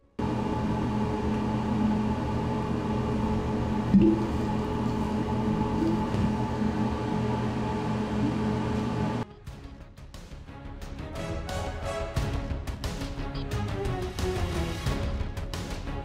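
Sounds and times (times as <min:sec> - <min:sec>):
steady hum: 0:00.2 - 0:09.2.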